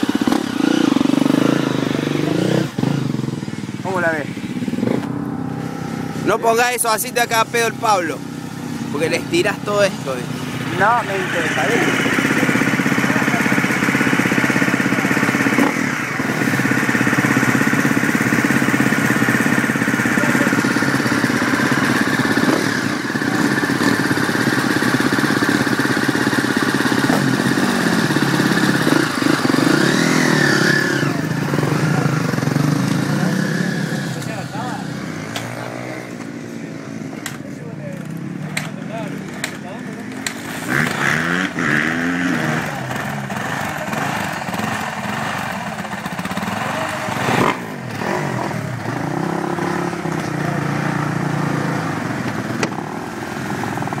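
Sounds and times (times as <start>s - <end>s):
motocross bike engines revving: 0.0s - 54.0s.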